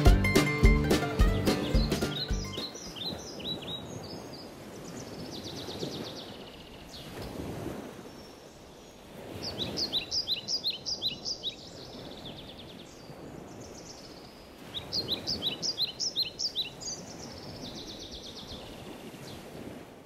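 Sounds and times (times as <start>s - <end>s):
songbird chirping and trilling: 0.0s - 7.2s, 8.1s - 19.5s.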